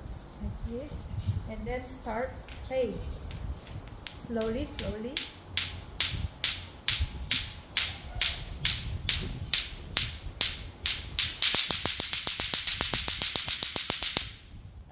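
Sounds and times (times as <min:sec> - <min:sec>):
plastic clacker balls clacking: 0:03.3 - 0:14.4.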